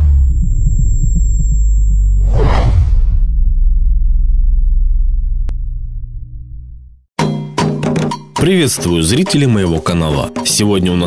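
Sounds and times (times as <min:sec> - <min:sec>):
low rumbling drone: 0:00.0 - 0:07.1
whoosh: 0:02.2 - 0:07.0.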